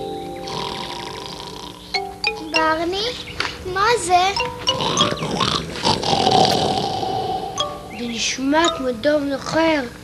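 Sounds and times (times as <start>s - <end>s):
children's background music: 0.0s - 5.7s, 7.4s - 10.0s
bear snore: 0.4s - 1.9s, 4.7s - 7.6s.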